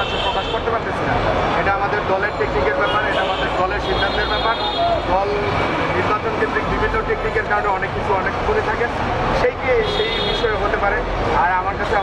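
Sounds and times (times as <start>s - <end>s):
man talking: 0.0s - 12.0s
street traffic noise: 0.0s - 12.0s.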